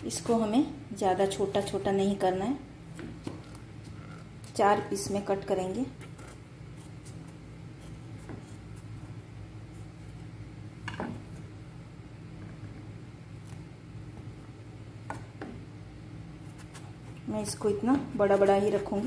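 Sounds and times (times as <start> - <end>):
steady low hum: 0.0 - 19.0
knife cutting vegetable: 16.4 - 17.3.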